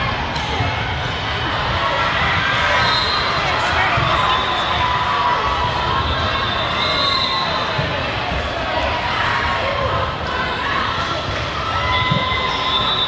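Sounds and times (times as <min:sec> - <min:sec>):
voices and shouts echoing: 0:00.0 - 0:13.0.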